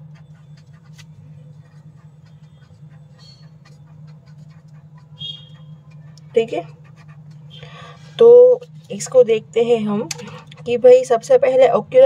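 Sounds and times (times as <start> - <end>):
marker scratching on paper: 0.0 - 7.6, 10.5 - 11.2
steady low hum: 0.0 - 12.0
marker squeak: 0.1 - 7.8.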